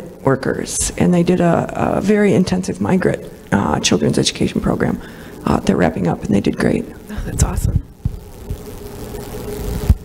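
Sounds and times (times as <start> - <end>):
faint steady hum: 0.0 - 10.0
microphone rubbing rumble: 0.0 - 10.0
microphone handling thumps: 7.1 - 8.7, 9.8 - 10.0.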